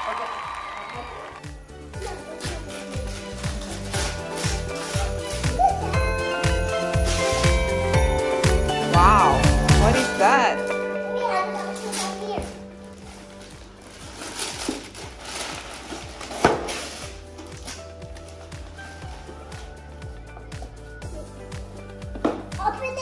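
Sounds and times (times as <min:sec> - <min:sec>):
background music: 0:00.0 - 0:23.0
wrapping paper rustling and tearing: 0:02.0 - 0:05.4, 0:11.8 - 0:19.8.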